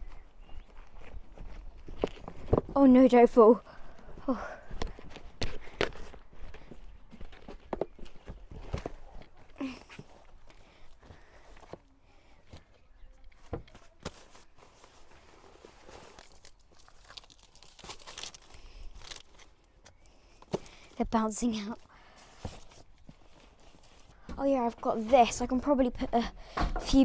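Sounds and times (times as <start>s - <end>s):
footsteps on concrete: 0.0s - 2.8s.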